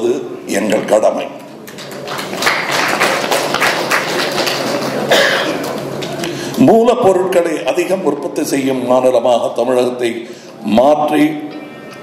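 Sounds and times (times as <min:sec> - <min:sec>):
audience applauding: 0:01.7 - 0:06.2.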